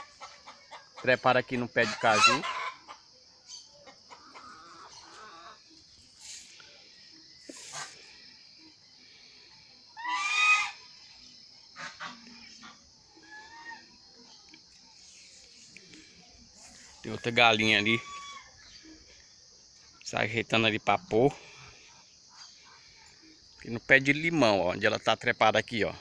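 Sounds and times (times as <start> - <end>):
poultry calling: 0.0 - 5.8, 9.9 - 11.0, 11.8 - 14.0, 15.8 - 18.9.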